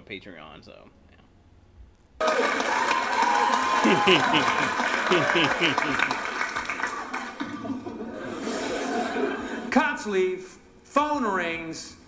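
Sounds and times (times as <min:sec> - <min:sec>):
scattered clapping: 0:02.2 - 0:07.7
audience laughter: 0:03.6 - 0:09.7.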